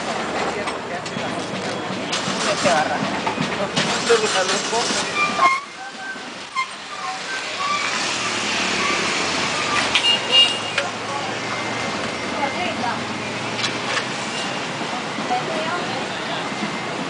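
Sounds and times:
faint voices: 0.0s - 17.0s
motor vehicle humming: 0.0s - 17.0s.

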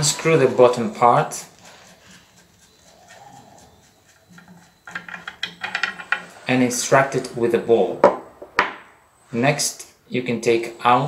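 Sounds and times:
faint metal handling: 4.4s - 6.5s.

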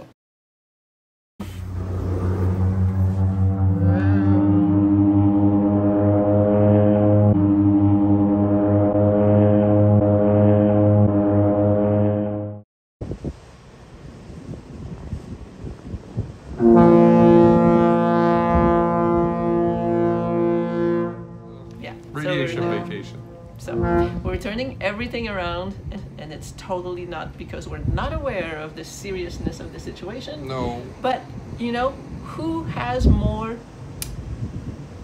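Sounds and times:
harbour noise: 1.4s - 12.5s, 13.1s - 35.0s
deep ship's horn blast: 1.4s - 12.6s, 16.1s - 26.2s.

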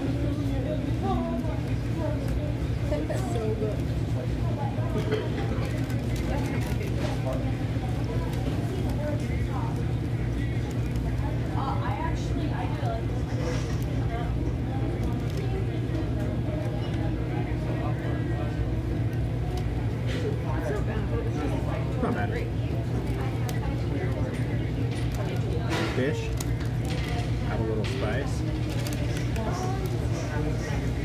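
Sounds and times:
indistinct background voices: 0.0s - 31.0s.

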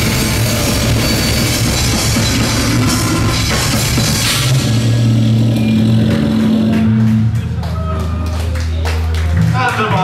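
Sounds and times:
distorted electric guitar and bass: 0.0s - 10.0s
drums: 0.0s - 10.0s.

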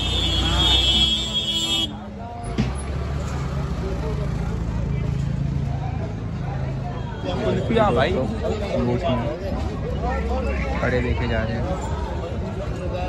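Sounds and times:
voices of passers-by: 0.0s - 13.0s.

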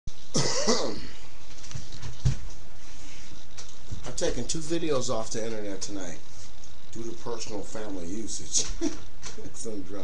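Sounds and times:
person clearing throat: 0.3s - 1.2s.

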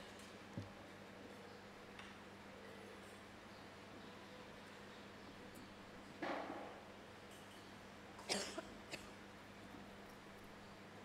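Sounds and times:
person coughing: 8.2s - 9.1s.

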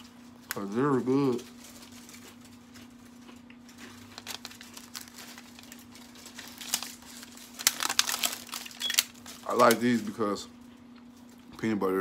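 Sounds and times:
plastic packaging crinkling: 0.0s - 10.5s.

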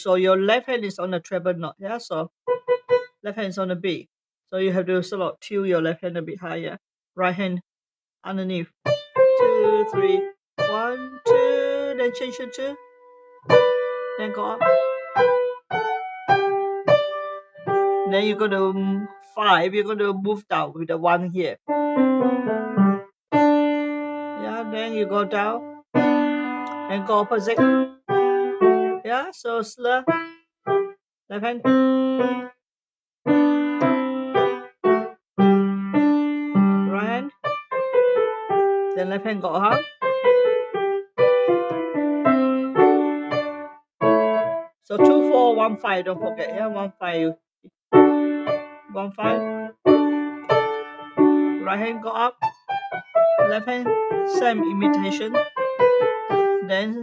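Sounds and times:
piano notes: 2.5s - 3.2s, 8.8s - 18.4s, 21.7s - 29.1s, 30.1s - 31.0s, 31.6s - 32.5s, 33.3s - 46.9s, 47.9s - 57.0s
single piano notes: 26.0s - 26.9s, 40.3s - 45.4s.

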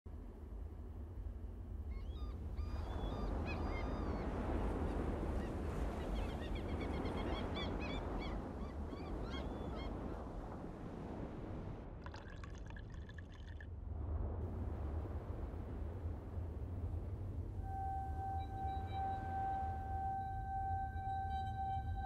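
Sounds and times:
outdoor ambience hiss: 0.1s - 3.6s, 12.0s - 22.0s.

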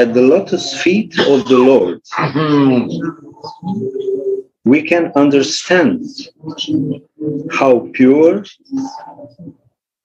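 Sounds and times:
pigeon cooing: 2.2s - 4.6s.

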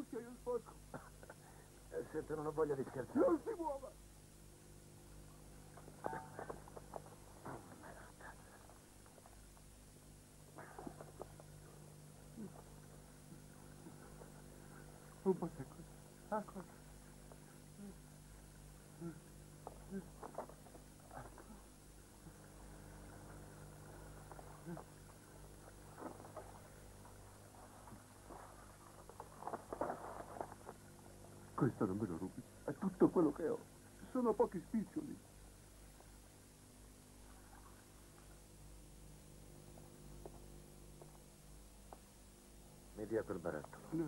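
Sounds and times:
low steady hum: 0.0s - 44.0s.

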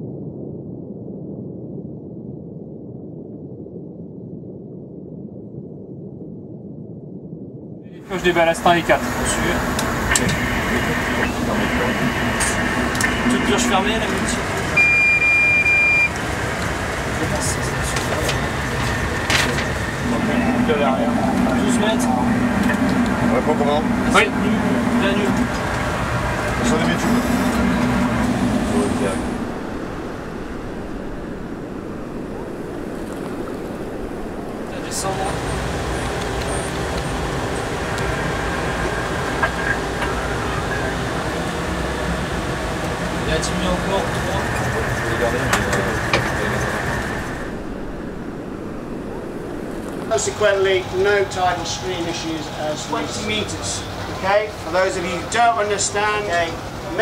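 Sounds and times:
machinery and ventilation hum: 7.9s - 57.0s
held tones: 8.6s - 16.9s
high electronic beep: 14.8s - 16.2s.

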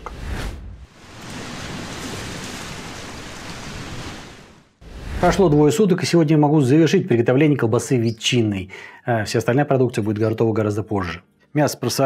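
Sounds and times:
sea surf washing on shore: 0.0s - 5.8s.

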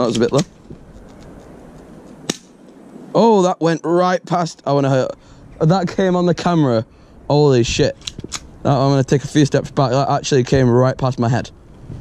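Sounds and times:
airsoft pistol shot snap: 2.3s - 2.6s.

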